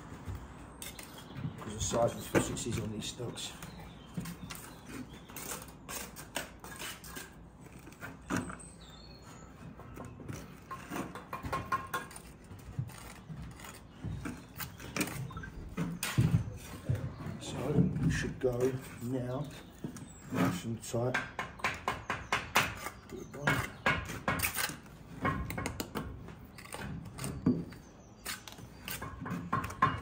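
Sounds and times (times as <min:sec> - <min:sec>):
trowel scraping and tapping: 0:04.2 - 0:08.7, 0:09.8 - 0:16.3.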